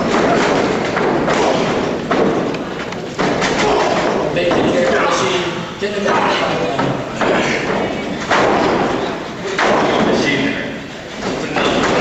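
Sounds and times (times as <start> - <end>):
heavy thuds with echo: 0.0 - 12.0.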